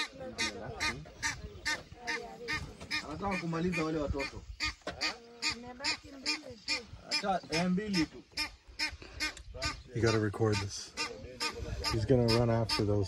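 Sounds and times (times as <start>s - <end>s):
ducks quacking: 0.0s - 13.0s.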